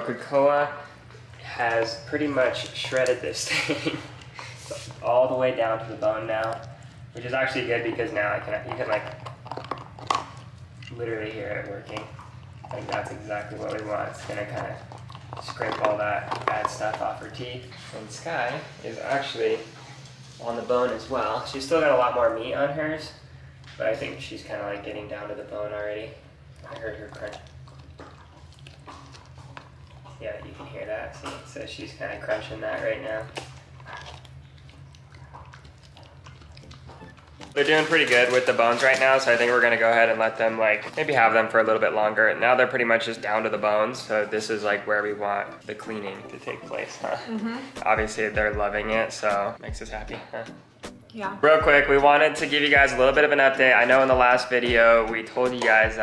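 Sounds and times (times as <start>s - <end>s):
dog chewing a bone: 0.8s - 18.1s, 23.6s - 47.0s
dog teeth scraping bone: 7.5s - 11.0s, 11.6s - 17.1s, 26.5s - 31.6s, 33.2s - 37.6s
bone cracking: 33.2s - 39.6s.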